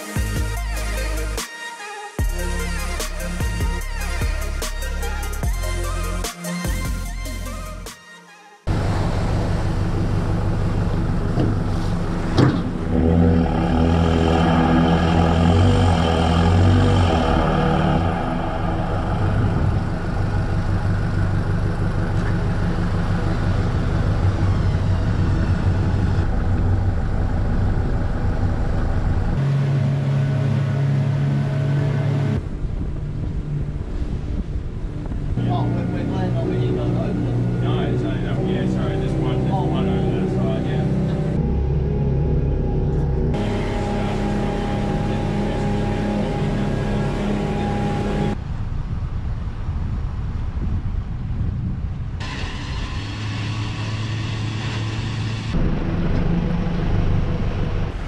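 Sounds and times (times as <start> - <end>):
boat engines under way: 8.7 - 58.0
vehicle engine running: 8.7 - 58.0.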